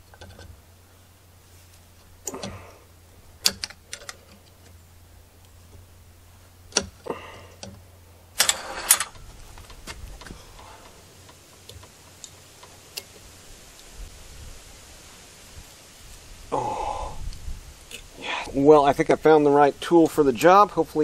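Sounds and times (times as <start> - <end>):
metal scraping on metal: 8.4 - 9.8.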